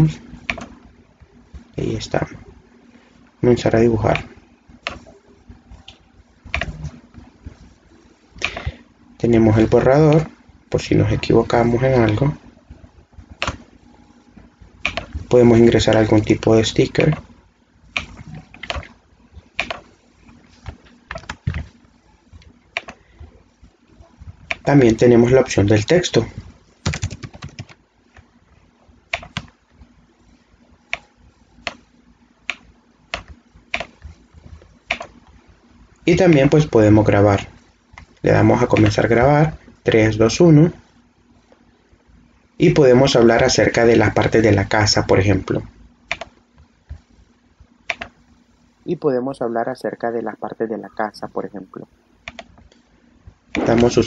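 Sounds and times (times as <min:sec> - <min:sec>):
computer mouse clicks: 0:00.4 - 0:00.8, 0:04.1 - 0:05.1, 0:05.9 - 0:07.0, 0:08.4 - 0:08.8, 0:13.4 - 0:13.7, 0:14.8 - 0:16.3, 0:17.9 - 0:19.0, 0:19.6 - 0:21.8, 0:22.4 - 0:23.0, 0:24.4 - 0:25.0, 0:29.1 - 0:29.9, 0:30.9 - 0:35.4, 0:37.4 - 0:39.1, 0:46.1 - 0:47.1, 0:47.8 - 0:48.2, 0:52.2 - 0:52.8
breath-like noise: 0:08.4 - 0:09.0.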